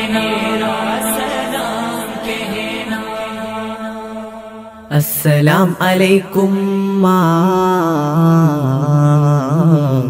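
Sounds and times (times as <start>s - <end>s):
low drone: 0.0s - 9.0s
voice chanting long notes: 0.0s - 10.0s.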